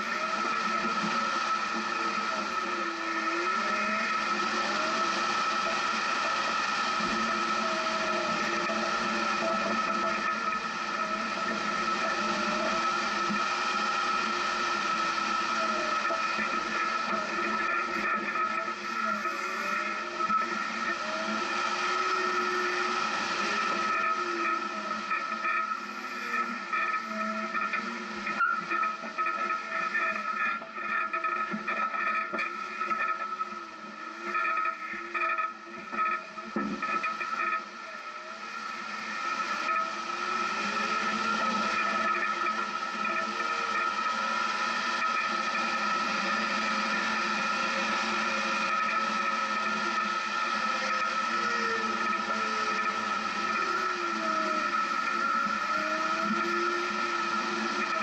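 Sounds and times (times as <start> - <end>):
off-road vehicle engine whining: 0.0 - 58.0.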